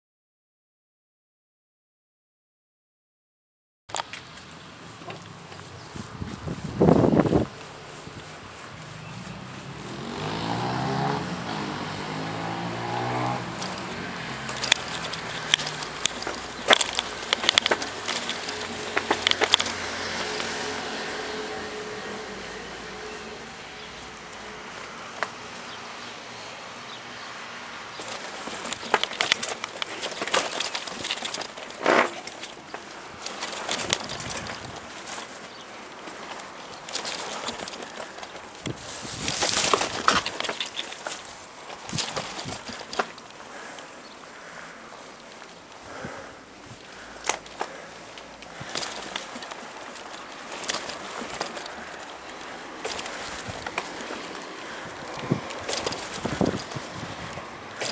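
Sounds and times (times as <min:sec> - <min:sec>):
bike rattling and clattering: 0:03.9 - 0:57.9.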